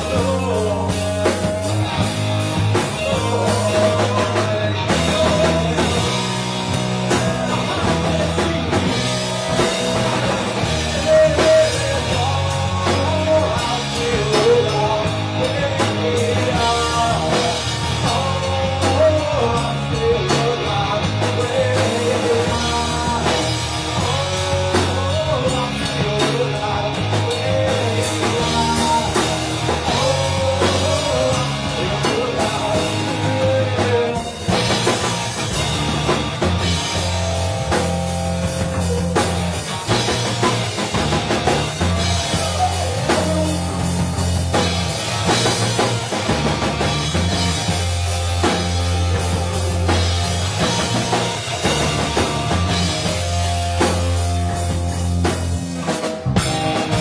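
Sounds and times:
bass guitar: 0.0s - 57.0s
drum kit: 0.0s - 57.0s
electric guitar: 0.0s - 57.0s.

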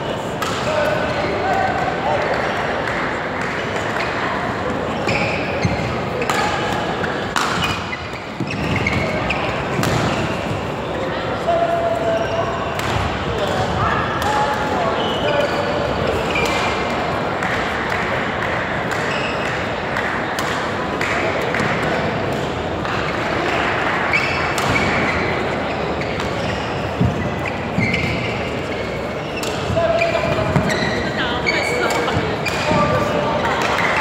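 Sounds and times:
background chatter: 0.0s - 34.0s
racket hitting shuttlecock: 6.2s - 9.1s, 9.7s - 10.3s, 16.3s - 25.1s, 29.4s - 30.8s.

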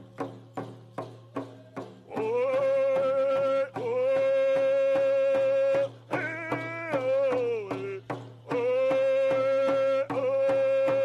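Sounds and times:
steady hand drum beats: 0.0s - 11.0s
person singing: 2.1s - 11.0s.

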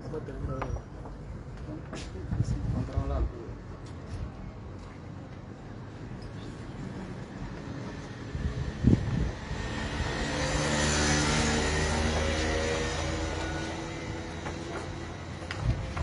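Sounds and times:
vehicle engine passing by: 8.0s - 16.0s.

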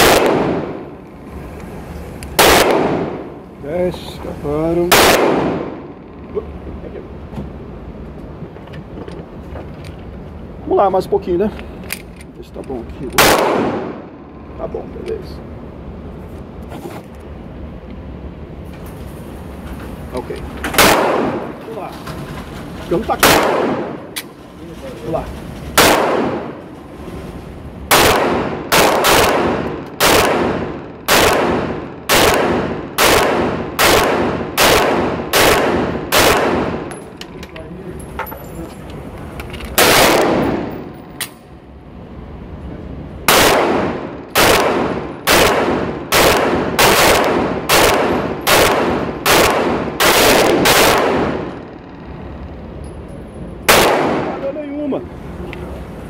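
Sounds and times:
pistol shots echoing indoors: 2.4s - 3.3s, 4.9s - 5.8s, 20.8s - 21.5s, 27.9s - 36.7s, 39.8s - 40.7s, 43.3s - 51.5s, 53.7s - 54.4s.

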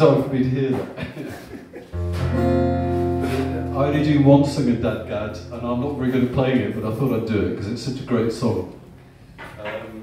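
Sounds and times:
person laughing: 1.0s - 2.0s, 3.2s - 3.8s
acoustic guitar chord ringing: 2.0s - 9.4s.

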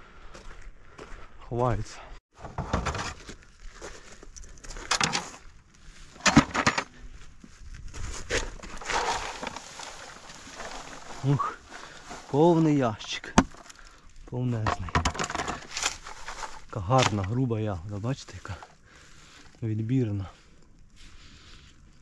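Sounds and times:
berries rattling into plastic crate: 8.4s - 11.5s, 14.6s - 17.4s.

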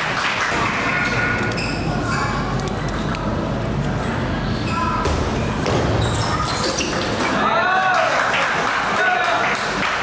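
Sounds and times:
murmur of spectators: 0.0s - 10.0s.

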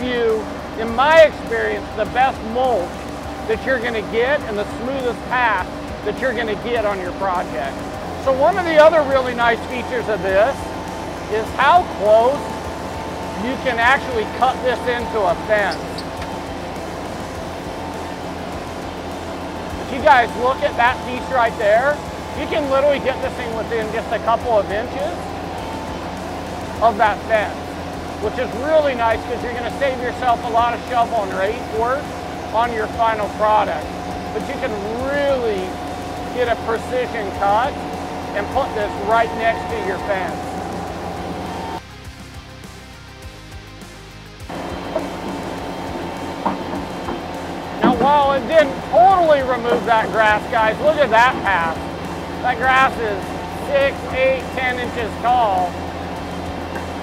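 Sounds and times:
rotary tiller cutting soil: 0.0s - 41.8s, 44.5s - 57.0s
steady high tone: 0.0s - 41.8s, 44.5s - 57.0s
loader engine running: 0.0s - 57.0s
music with steady beat: 0.0s - 57.0s.

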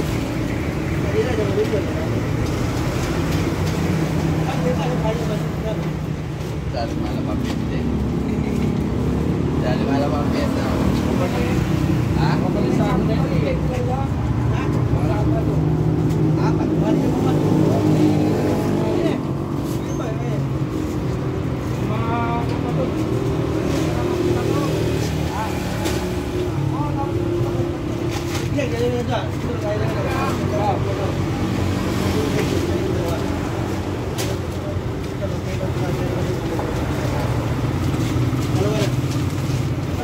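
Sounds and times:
engine rumbling: 0.0s - 40.0s
people talking: 0.9s - 2.6s, 4.3s - 6.1s, 6.7s - 20.5s, 21.8s - 37.5s, 38.4s - 39.0s.

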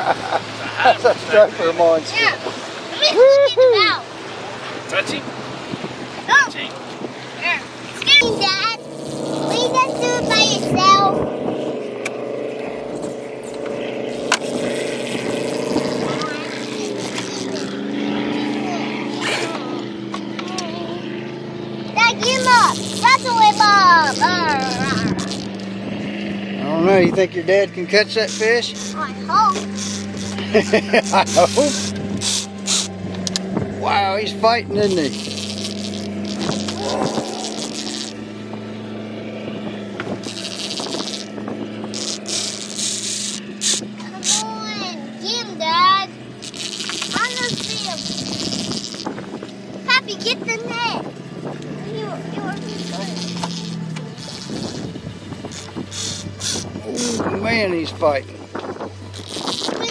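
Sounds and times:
child laughing: 0.0s - 1.4s, 3.0s - 4.0s, 18.3s - 19.8s, 20.4s - 21.2s, 22.0s - 25.2s, 28.9s - 31.9s, 59.6s - 59.9s
boat motor humming: 0.0s - 59.9s
fishing reel whirring: 7.8s - 45.3s, 46.0s - 50.7s, 52.1s - 59.9s.

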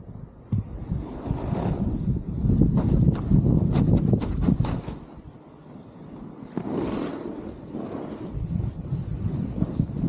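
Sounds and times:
wind noise on microphone: 0.0s - 10.0s
snowboard carving through snow: 0.6s - 10.0s.

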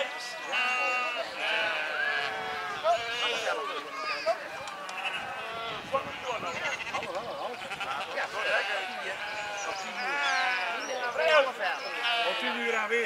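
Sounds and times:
sheep bleating: 0.0s - 12.9s.

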